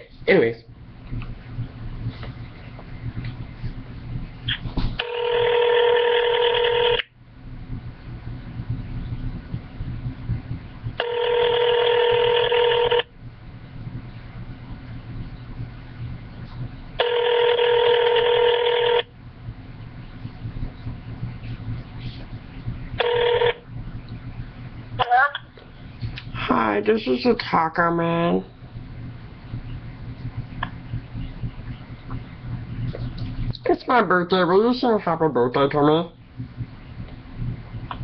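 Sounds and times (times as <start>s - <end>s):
telephone ringback tone: 5.0s - 7.0s, 11.0s - 13.0s, 17.0s - 19.1s, 23.0s - 23.6s.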